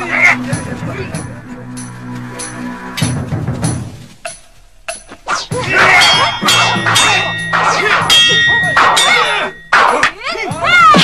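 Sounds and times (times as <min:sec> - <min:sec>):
metal swords clashing: 0:05.4 - 0:11.0.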